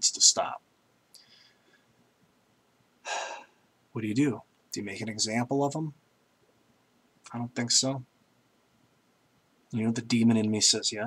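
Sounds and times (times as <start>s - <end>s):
man speaking: 0.0s - 0.6s, 3.1s - 6.0s, 7.3s - 8.1s, 9.7s - 11.0s
man breathing: 1.2s - 2.0s, 3.0s - 3.6s.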